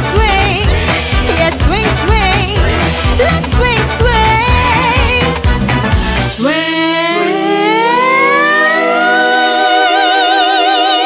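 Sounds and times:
sustained backing notes: 0:00.2 - 0:11.0
woman singing long note: 0:06.4 - 0:11.0.

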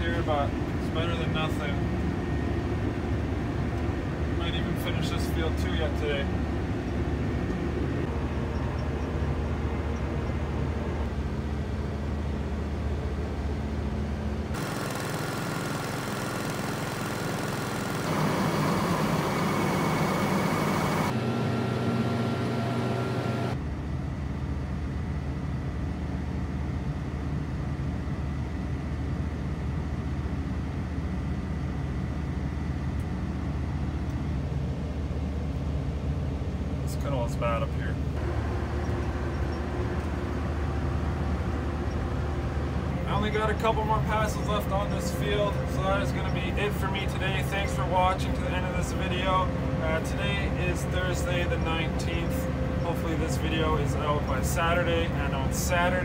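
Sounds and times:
low engine drone in cab: 0:00.0 - 0:56.0
rough hissy running noise: 0:14.6 - 0:21.1.

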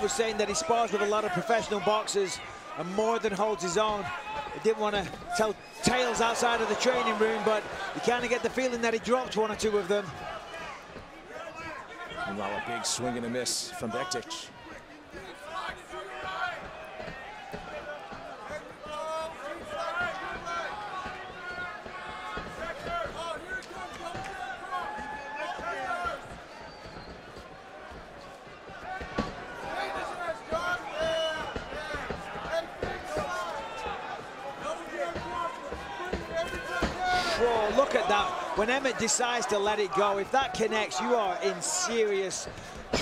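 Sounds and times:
crowd noise hum: 0:00.0 - 0:43.0.

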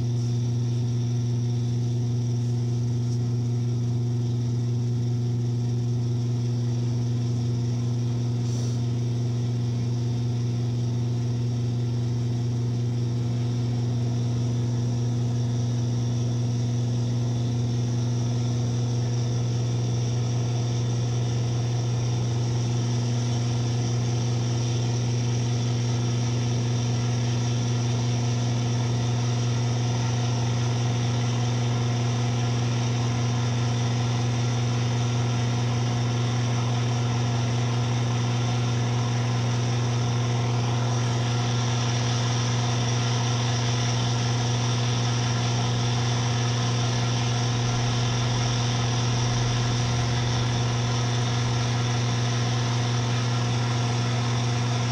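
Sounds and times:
electronic noise drone with hum and hiss: 0:37.4 - 0:54.9.

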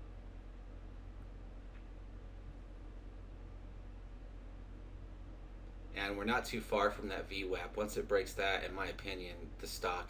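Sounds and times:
faint low hum: 0:00.0 - 0:10.0
microphone hiss: 0:00.0 - 0:10.0.

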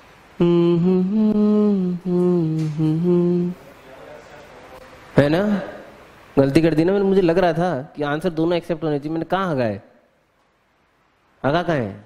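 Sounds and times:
man humming: 0:00.4 - 0:03.8.

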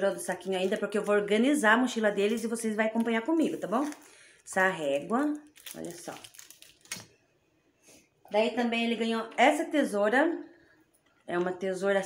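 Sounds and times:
plastic bag crinkling: 0:00.0 - 0:07.3.

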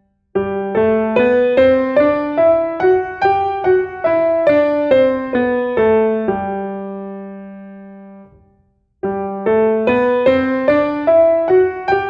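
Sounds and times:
piano playing descending scale: 0:00.4 - 0:08.4, 0:09.0 - 0:12.0.

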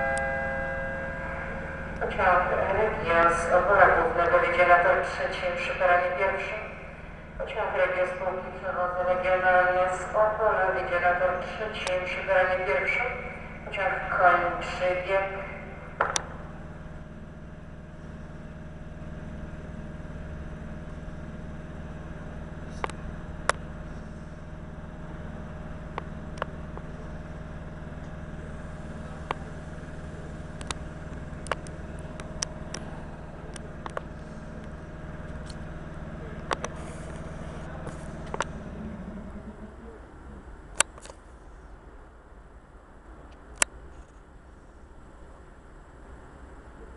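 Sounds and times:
train electrical hum and whine: 0:00.0 - 0:46.9.

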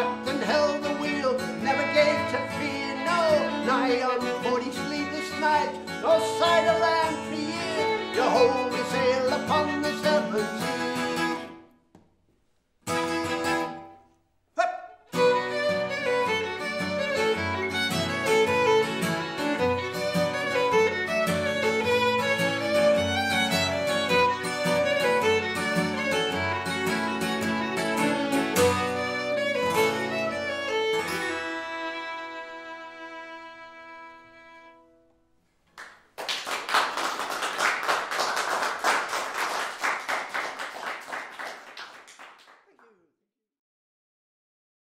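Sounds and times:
fiddle: 0:00.0 - 0:11.6, 0:12.9 - 0:13.8, 0:15.1 - 0:35.1
acoustic guitar: 0:00.0 - 0:11.8, 0:12.8 - 0:33.2
audience applauding: 0:35.8 - 0:43.0.

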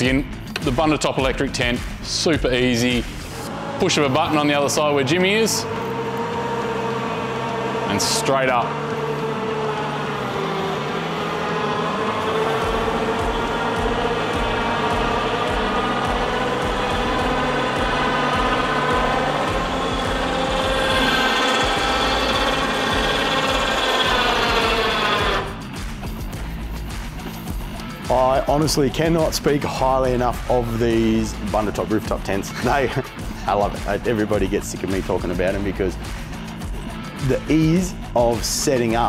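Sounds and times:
electric motor whine: 0:03.2 - 0:26.3.

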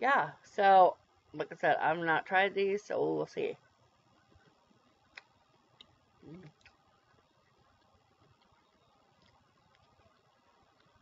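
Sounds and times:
closed-mouth mm: 0:06.2 - 0:06.8.

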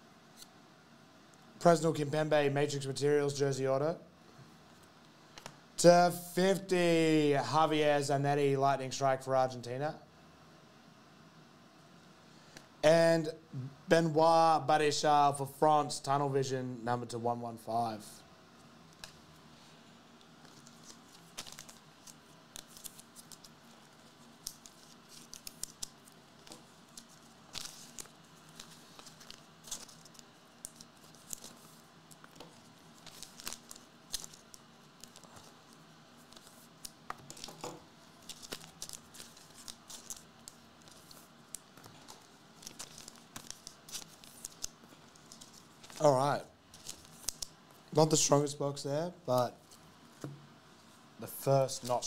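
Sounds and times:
cards and packaging handled: 0:20.1 - 0:47.6.

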